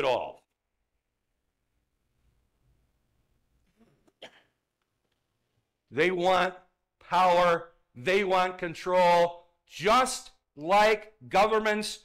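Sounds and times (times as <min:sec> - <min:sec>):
faint throat hiccup or cough: 0:03.7 - 0:04.7.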